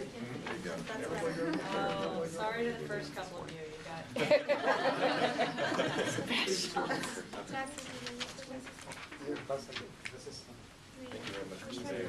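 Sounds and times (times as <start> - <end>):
murmured voices: 0.0 - 3.4.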